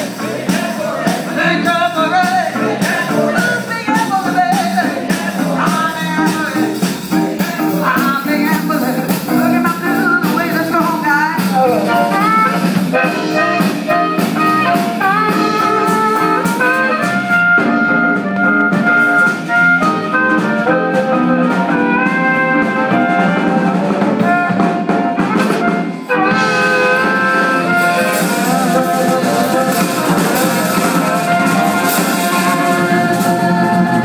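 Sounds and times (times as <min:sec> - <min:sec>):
drums: 0:00.0 - 0:34.0
electric guitar: 0:00.0 - 0:34.0
amplified blues harmonica solo: 0:11.0 - 0:34.0.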